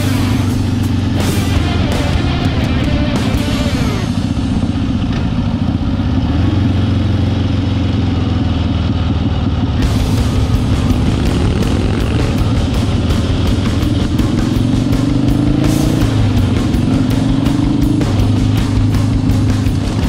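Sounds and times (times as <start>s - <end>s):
motorcycle engine running: 0.0s - 20.0s.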